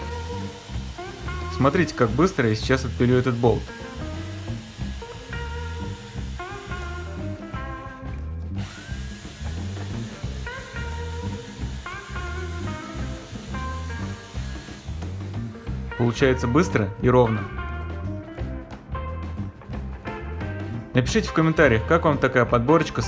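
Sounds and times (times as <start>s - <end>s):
electric drill running: 0.0s - 16.2s
guitar music with bass beat: 0.0s - 23.0s
hacksaw cutting metal: 8.6s - 12.2s.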